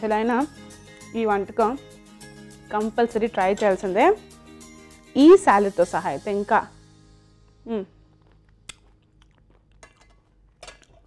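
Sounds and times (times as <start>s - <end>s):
faint chewing: 7.5s - 11.0s
small mouth clicks: 8.2s - 9.8s.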